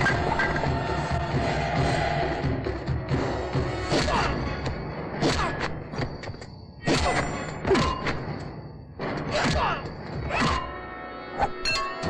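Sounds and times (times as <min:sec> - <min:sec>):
action music: 0:00.0 - 0:12.0.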